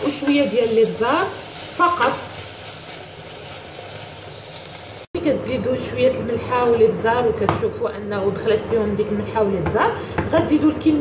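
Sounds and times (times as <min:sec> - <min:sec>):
rice frying in oil sizzling: 0:00.0 - 0:05.1.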